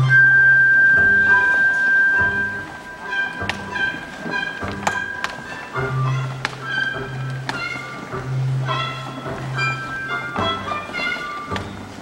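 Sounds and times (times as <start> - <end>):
held low bass note: 0.0 - 4.8
tango orchestra playing: 0.0 - 12.0.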